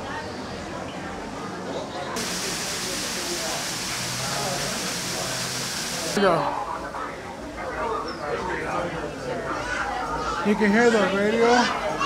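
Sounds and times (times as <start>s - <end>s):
steam hiss: 2.2s - 6.2s.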